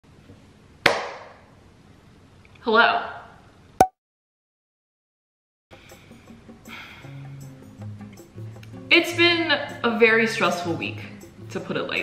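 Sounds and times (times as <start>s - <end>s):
sharp hand clap: 0.9s - 1.4s.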